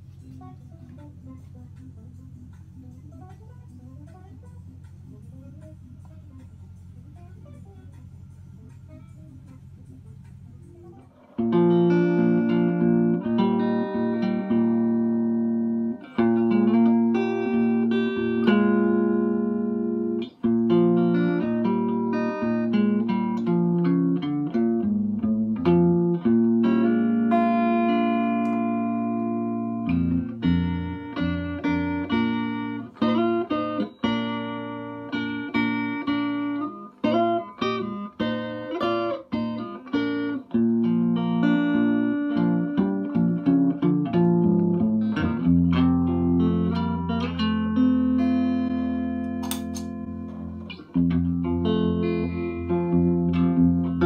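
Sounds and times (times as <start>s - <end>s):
electric guitar notes and chords: 0.0s - 54.0s.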